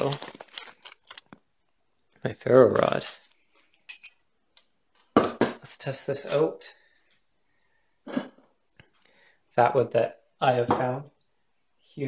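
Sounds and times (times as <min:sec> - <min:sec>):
man speaking: 0:00.0 - 0:00.3, 0:02.2 - 0:03.3, 0:05.6 - 0:06.8, 0:09.5 - 0:11.2.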